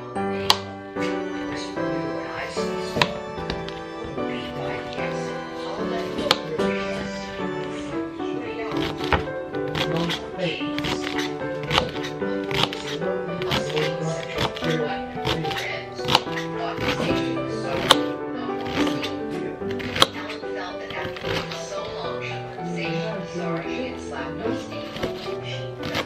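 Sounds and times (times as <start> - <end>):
background music: 0.0 - 26.0
knife chopping on plastic board: 0.4 - 0.7, 2.4 - 5.2, 5.9 - 7.2, 8.6 - 22.0, 24.6 - 26.0.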